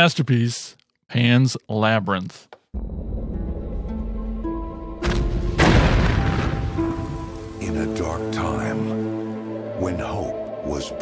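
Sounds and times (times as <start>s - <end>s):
loud boom: 5.0s - 7.4s.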